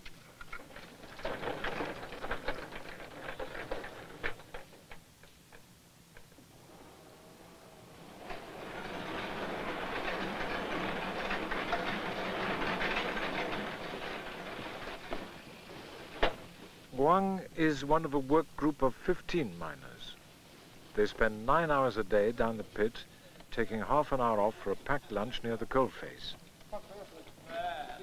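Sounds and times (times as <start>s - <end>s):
metal clanks and knocks: 0.0s - 16.8s
mining machinery running: 0.2s - 5.2s, 6.4s - 26.3s.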